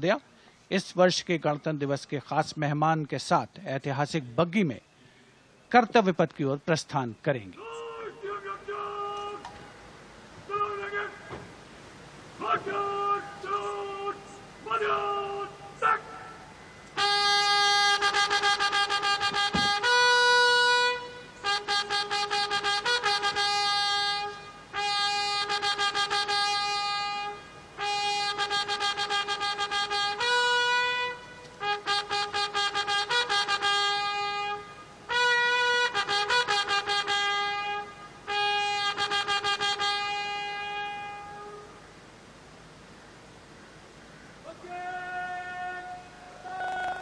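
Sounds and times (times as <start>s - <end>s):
trumpet fanfare: 17.0s - 41.7s.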